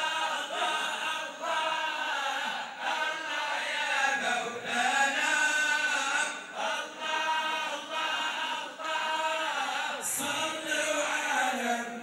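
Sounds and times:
men chanting unaccompanied: 0.0 - 12.0.

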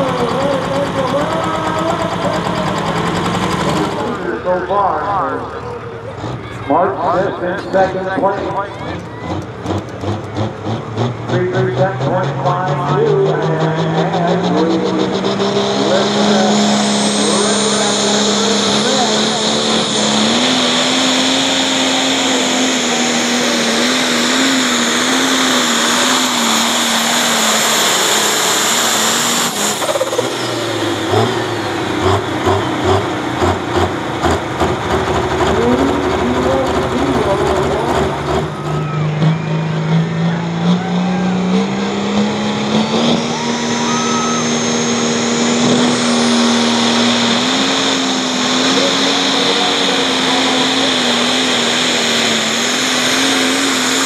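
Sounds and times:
diesel engine running hard: 0.0 - 54.0
lumpy pulsing engine: 0.0 - 54.0
turbo whine: 12.1 - 54.0.

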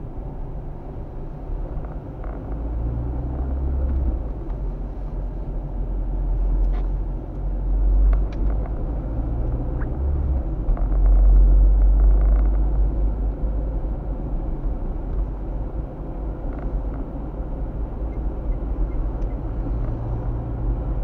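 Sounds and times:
car cabin road noise: 0.0 - 21.0.

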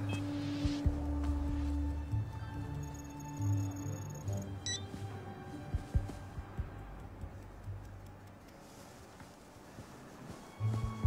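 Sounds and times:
dull low thumps: 0.0 - 2.4, 5.0 - 8.4
tense music with low drone: 0.0 - 11.0
high electronic beep: 2.9 - 4.8.

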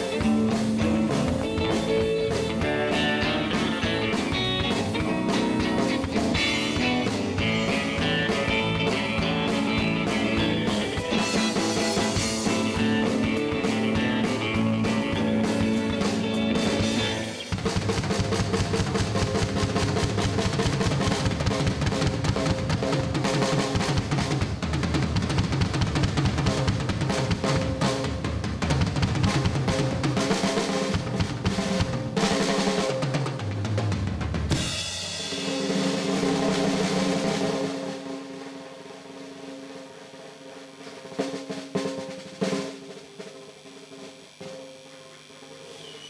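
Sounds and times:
drum solo on drum kit: 0.0 - 46.0
cymbal wash: 34.6 - 46.0.

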